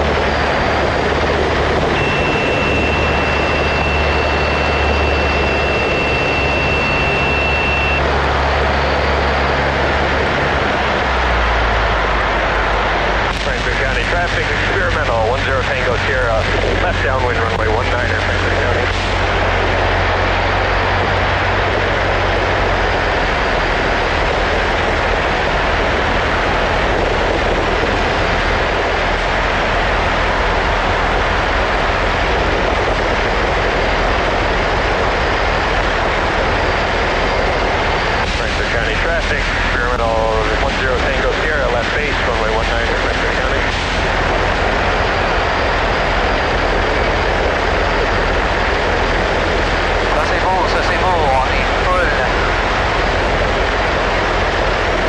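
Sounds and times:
light aircraft engine droning: 0:00.0 - 0:55.0.

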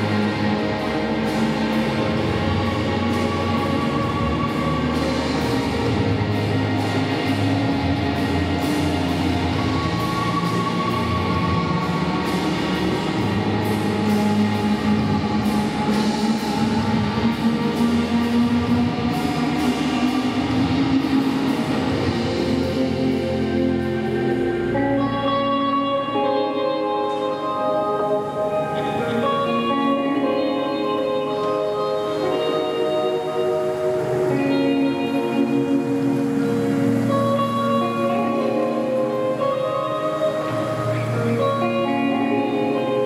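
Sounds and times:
guitar: 0:00.0 - 0:43.0.

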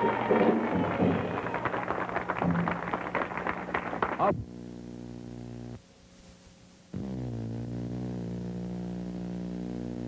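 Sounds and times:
music: 0:00.0 - 0:04.0
audience applauding: 0:00.0 - 0:04.3.

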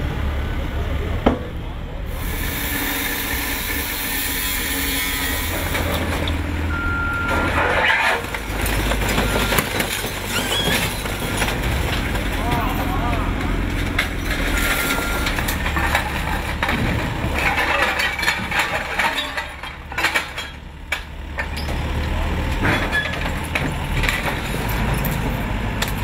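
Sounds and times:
diesel engine running under load: 0:00.0 - 0:26.0
debris knocking and cracking: 0:05.6 - 0:26.0
background voices: 0:10.0 - 0:19.7.

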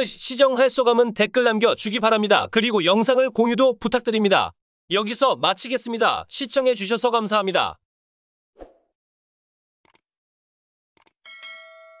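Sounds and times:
mouse clicks: 0:11.0 - 0:11.2
notification bell dinging: 0:11.3 - 0:12.0.

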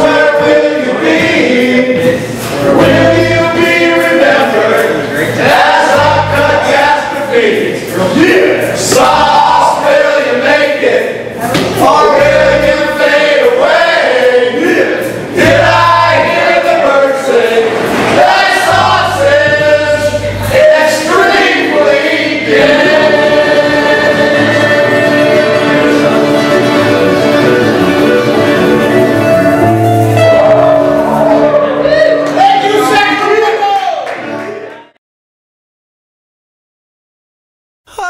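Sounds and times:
acoustic guitar: 0:00.0 - 0:07.2, 0:14.6 - 0:33.0
men singing together: 0:00.0 - 0:31.8
strummed acoustic guitars: 0:22.4 - 0:31.9.

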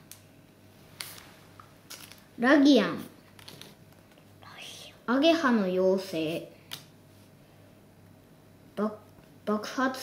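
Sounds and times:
paper cards being handled: 0:01.9 - 0:02.3.

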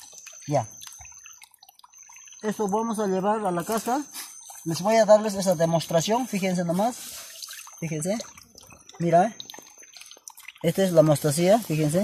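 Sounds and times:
water dripping: 0:00.0 - 0:12.0
steady high-pitched tone: 0:02.0 - 0:07.0.

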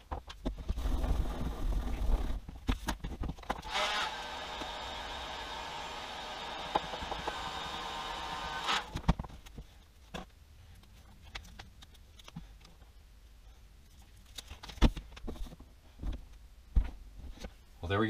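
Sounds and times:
heat gun blowing: 0:03.6 - 0:09.0.

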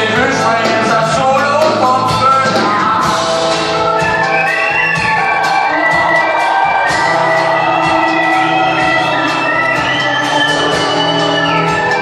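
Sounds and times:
drum beat: 0:00.0 - 0:12.0
guitar: 0:00.0 - 0:12.0
sliding lead melody: 0:00.0 - 0:12.0.

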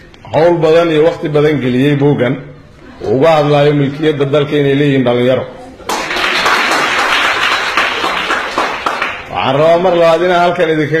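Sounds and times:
audience applauding: 0:05.9 - 0:09.3.

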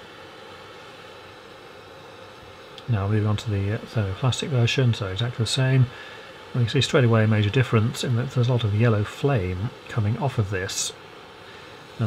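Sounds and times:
gas torch hissing: 0:00.0 - 0:12.0.

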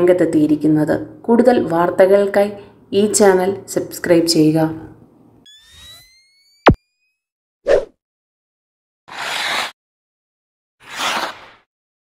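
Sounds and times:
electronic zap falling in pitch: 0:05.5 - 0:07.2.

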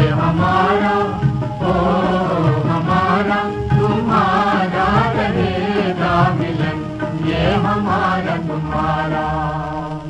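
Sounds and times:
old film song with vibrato: 0:00.0 - 0:10.0.

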